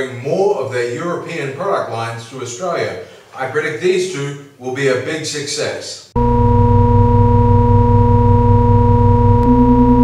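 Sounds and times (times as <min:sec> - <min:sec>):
buzzing synthesized hum: 0:06.2 - 0:10.0
pulsing low undertone: 0:06.2 - 0:10.0.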